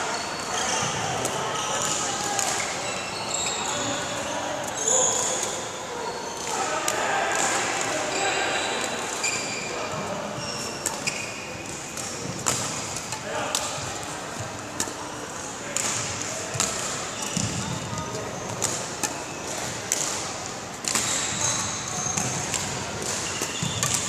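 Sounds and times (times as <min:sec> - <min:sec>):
sneakers squeaking: 0:00.0 - 0:24.0
badminton racket hitting shuttlecock: 0:10.6 - 0:15.0, 0:18.5 - 0:21.2, 0:22.2 - 0:24.0.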